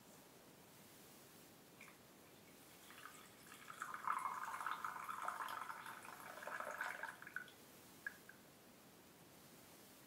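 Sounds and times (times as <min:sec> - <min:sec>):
drink pouring into a mug: 0:02.8 - 0:07.6.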